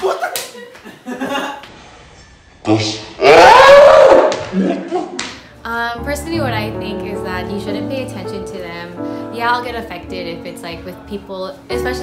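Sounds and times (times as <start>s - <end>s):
frightened scream: 3.0s - 4.5s.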